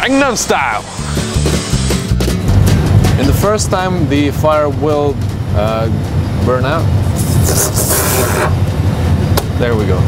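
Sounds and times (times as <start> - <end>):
low engine rumble: 0.0 - 10.0
loud hiss: 0.7 - 2.1, 7.1 - 8.6.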